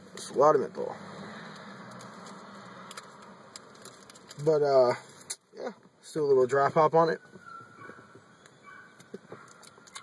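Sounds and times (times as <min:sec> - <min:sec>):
car cabin hiss and hum: 0:00.0 - 0:10.0.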